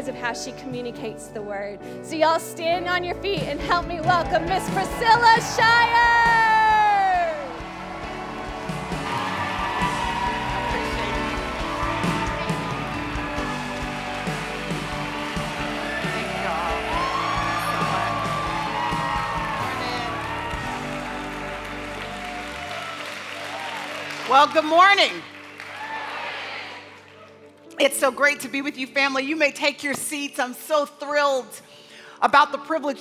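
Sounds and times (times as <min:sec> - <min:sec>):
live band playing: 0:03.1 - 0:25.6
crowd cheering and applauding: 0:03.7 - 0:27.8.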